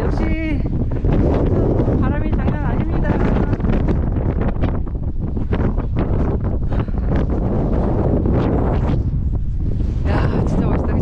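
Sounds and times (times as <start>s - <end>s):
strong wind buffeting microphone: 0.0s - 11.0s.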